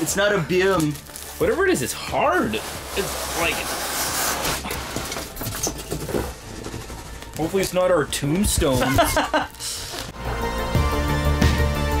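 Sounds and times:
plastic sheeting rustling: 0:00.0 - 0:07.8.

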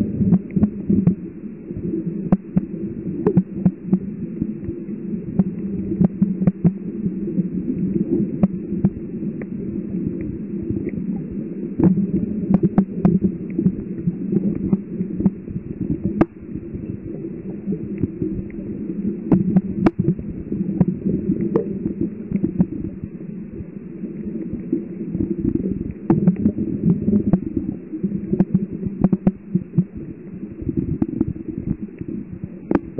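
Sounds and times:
underwater rumble of water: 0:00.0 - 0:32.9.

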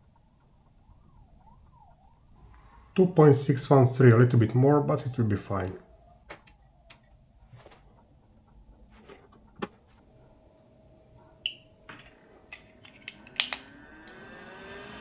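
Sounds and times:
dryer fan whining: 0:04.4 - 0:15.0
handling clicks: 0:12.5 - 0:13.7.

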